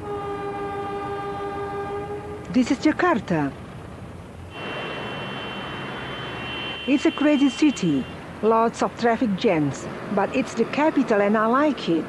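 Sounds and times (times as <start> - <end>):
locomotive horn blast: 0.0 - 2.6, 4.5 - 8.2.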